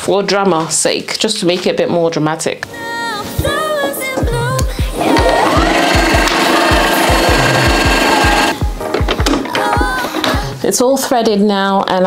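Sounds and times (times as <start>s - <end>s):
sewing machine motor whining: 5.0s - 8.6s.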